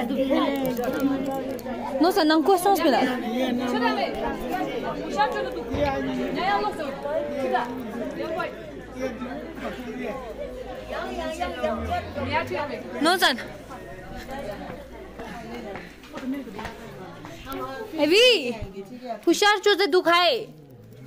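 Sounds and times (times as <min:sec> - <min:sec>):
people talking: 0:00.0 - 0:20.5.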